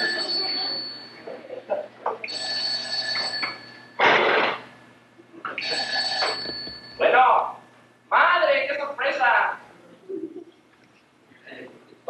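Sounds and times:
telephone ringing: 0.0s - 1.3s, 2.3s - 4.0s, 5.5s - 7.1s.

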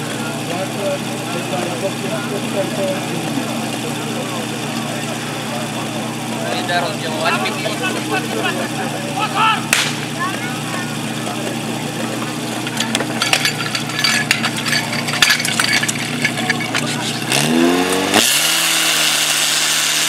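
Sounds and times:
pump engine running and revving: 0.0s - 20.0s
metal hose couplings clacking: 12.0s - 17.4s.

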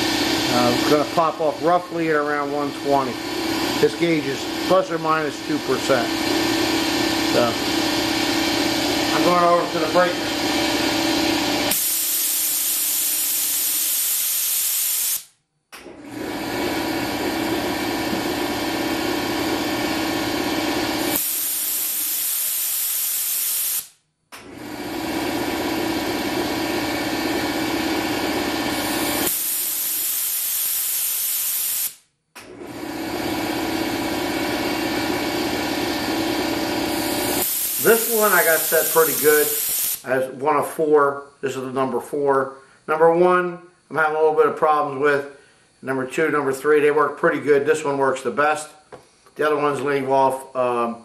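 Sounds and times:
air compressor running: 0.0s - 40.1s
safety valve venting with hiss: 11.7s - 15.3s, 21.0s - 23.9s, 28.8s - 32.0s, 37.1s - 40.1s.

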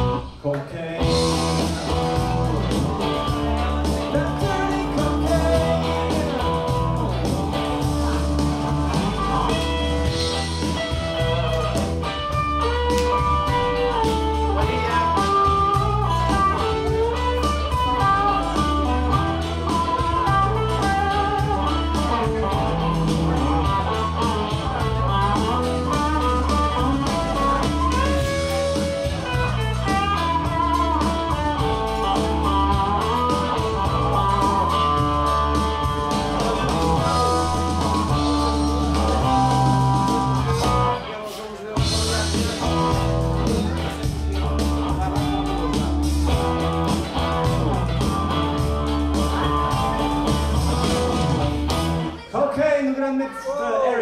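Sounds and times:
electric guitar lead lines: 0.0s - 41.2s, 41.8s - 52.3s
bass and drum backing: 0.0s - 52.3s.

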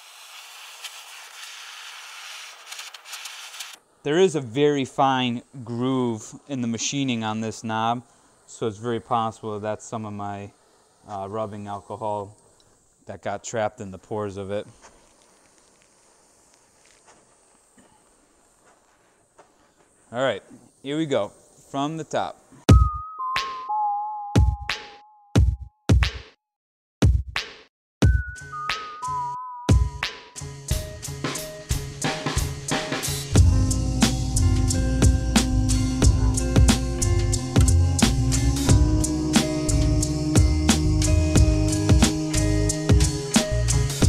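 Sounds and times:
propane torch hissing: 0.0s - 22.7s, 30.6s - 44.0s
faint ticks: 12.3s - 12.9s, 14.8s - 19.9s.

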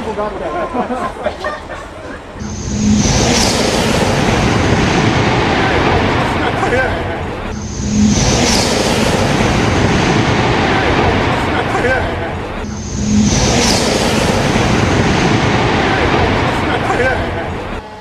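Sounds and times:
train passing at high speed: 2.2s - 18.0s.

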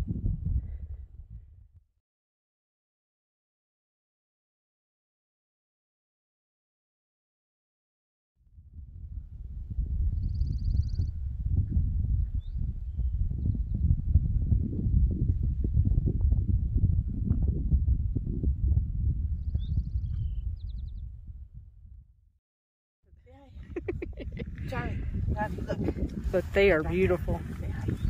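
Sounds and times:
wind buffeting microphone: 0.0s - 1.9s, 8.4s - 22.1s, 23.1s - 28.0s.

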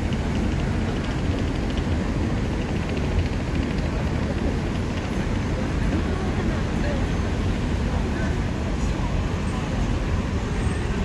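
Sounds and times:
city traffic: 0.0s - 11.0s
wind rumble on microphone: 0.0s - 11.0s.

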